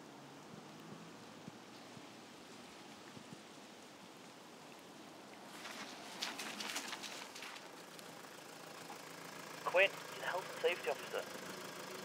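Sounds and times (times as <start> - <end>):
car rolling on wet tarmac: 0.0 - 12.0
light rain on wet ground: 0.0 - 12.0.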